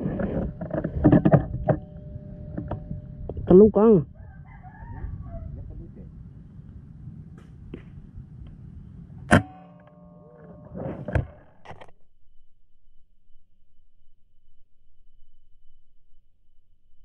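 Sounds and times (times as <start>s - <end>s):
outdoor background noise: 0.0s - 17.0s
sharp loud click with ringing: 9.3s - 10.7s.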